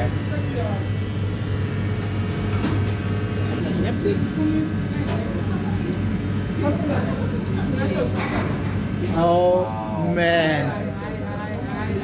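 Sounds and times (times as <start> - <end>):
kitchen equipment humming: 0.0 - 12.0.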